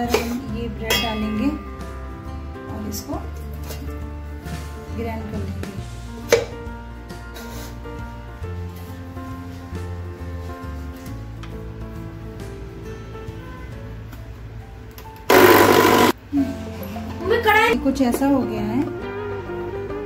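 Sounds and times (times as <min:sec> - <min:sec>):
background music with bass: 0:00.0 - 0:20.0
mixer grinder grinding bread: 0:15.3 - 0:16.2.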